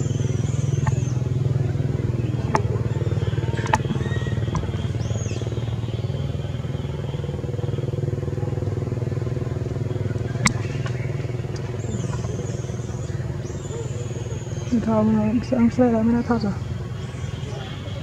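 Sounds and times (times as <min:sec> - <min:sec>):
low engine hum: 0:00.0 - 0:18.0
sharp clicks: 0:03.6 - 0:03.9.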